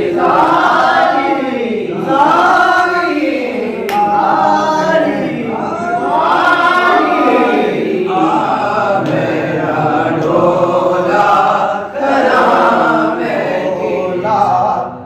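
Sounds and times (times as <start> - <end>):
men singing unaccompanied: 0.0 - 15.0.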